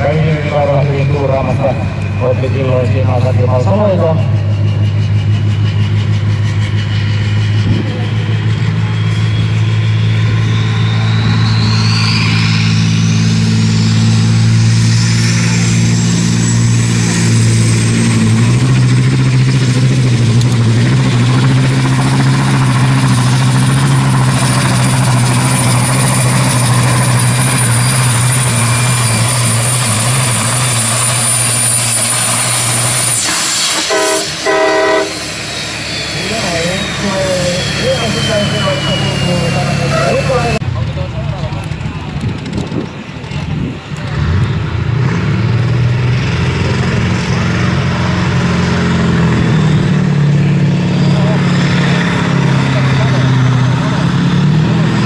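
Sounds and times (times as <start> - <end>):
turbo whine: 0.0 - 45.7, 46.4 - 55.0
diesel truck engine under load: 0.0 - 55.0.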